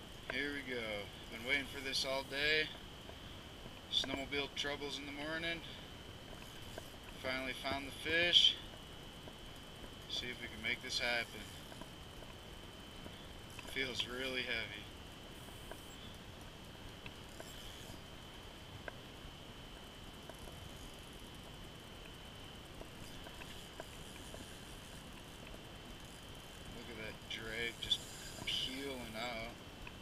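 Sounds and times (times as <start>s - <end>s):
faint high-pitched whine: 0.0s - 30.0s
faint ticks: 0.1s - 30.0s.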